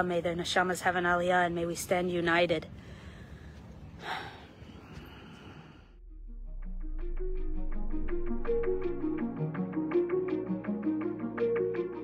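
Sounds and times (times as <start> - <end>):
faint outdoor background noise: 0.0 - 6.0
breath into microphone: 2.8 - 6.0.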